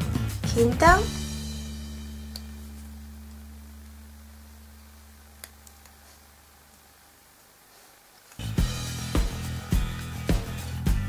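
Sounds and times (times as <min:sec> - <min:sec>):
background music low held note: 0:00.0 - 0:06.6.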